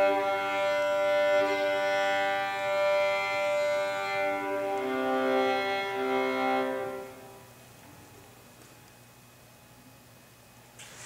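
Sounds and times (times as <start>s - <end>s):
string trio holding chord: 0.0s - 7.5s.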